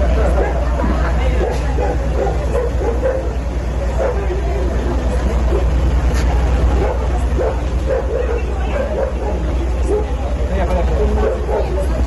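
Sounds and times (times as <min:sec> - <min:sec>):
indistinct voices: 0:00.0 - 0:12.0
steady low hum: 0:00.0 - 0:12.0
dog barking: 0:00.2 - 0:00.7, 0:01.4 - 0:04.4, 0:05.5 - 0:05.8, 0:06.8 - 0:10.2, 0:11.0 - 0:11.9.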